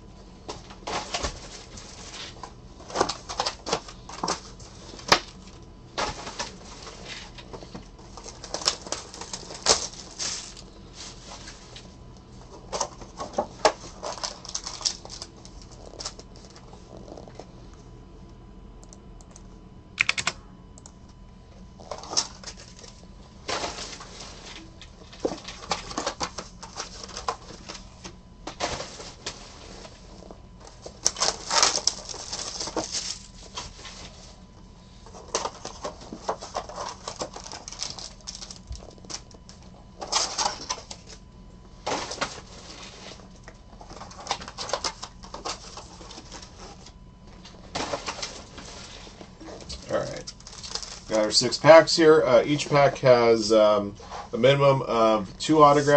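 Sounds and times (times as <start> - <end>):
plastic and foil packaging crinkling: 0.5 - 17.5, 21.8 - 55.9.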